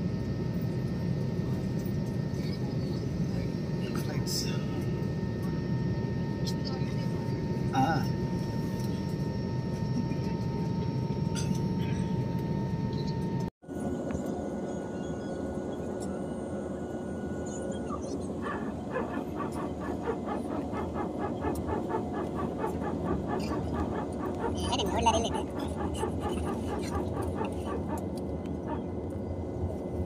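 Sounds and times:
jet engine rumble with whining tones: 0.0 - 30.0.

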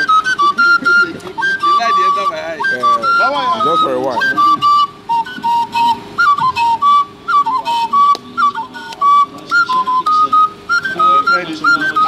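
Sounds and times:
flute playing short high notes: 0.0 - 12.0.

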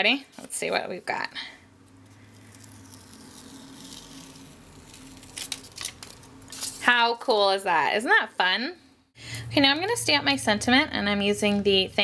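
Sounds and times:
paper strip peeling rasp: 2.2 - 6.2.

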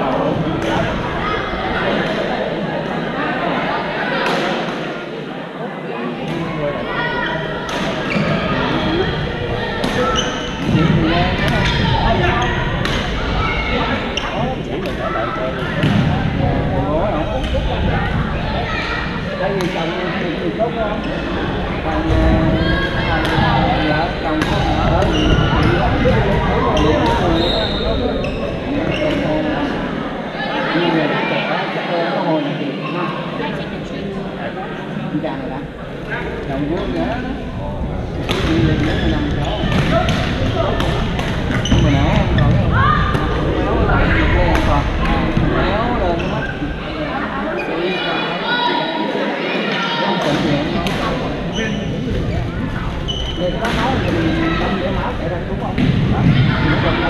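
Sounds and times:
players talking and calling: 0.0 - 57.0
sneakers squeaking on gym floor: 9.9 - 12.8, 25.0 - 26.0, 26.7 - 29.5, 38.5 - 40.6, 41.5 - 42.7, 53.0 - 54.5.

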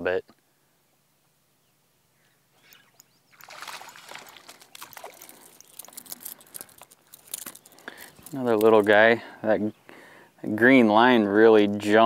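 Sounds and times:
fish splashing at water surface: 3.4 - 7.4.

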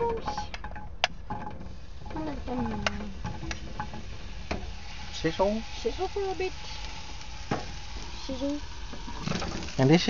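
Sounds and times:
utensil tapping a pan: 0.0 - 5.2
mushrooms sizzling in a frying pan: 1.7 - 10.0.

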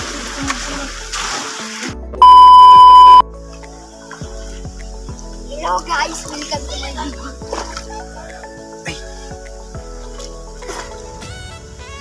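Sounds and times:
water splashing: 0.0 - 3.2, 6.0 - 8.6, 10.0 - 11.3
background music: 0.0 - 12.0
high electronic beep: 2.2 - 3.2.

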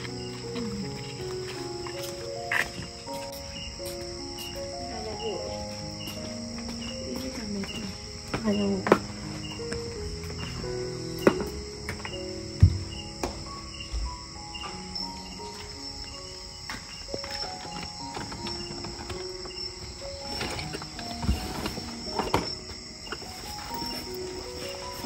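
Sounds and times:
crickets chirring: 0.0 - 25.0
slow tune of held notes: 0.0 - 25.0.

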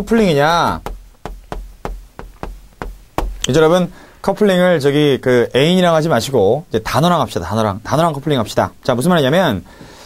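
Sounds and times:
chalk tapping on chalkboard: 0.0 - 3.6.

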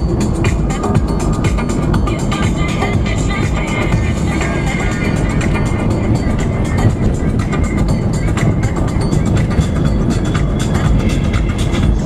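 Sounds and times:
car driving on road: 0.0 - 12.0
music playing: 0.0 - 12.0.

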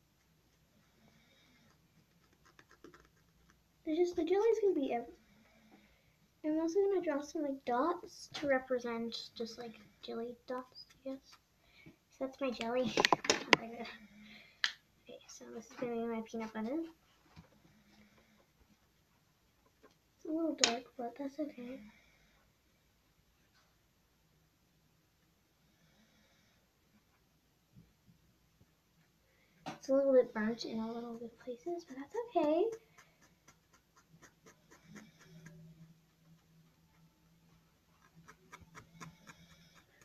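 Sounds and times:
soft low hum: 0.0 - 40.0
marker scratching on paper: 31.2 - 35.7.

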